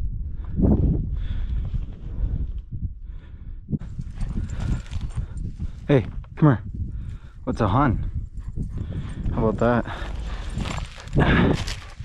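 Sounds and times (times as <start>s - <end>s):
footsteps crunching on gravel: 10.0s - 12.0s.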